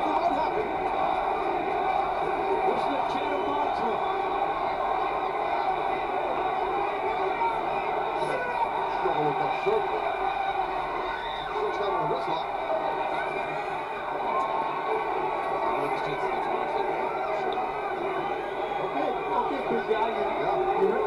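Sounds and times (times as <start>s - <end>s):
muffled speech from a speaker: 0.0s - 4.2s, 7.4s - 10.1s, 11.0s - 21.0s
arena crowd noise from a speaker: 0.0s - 21.0s.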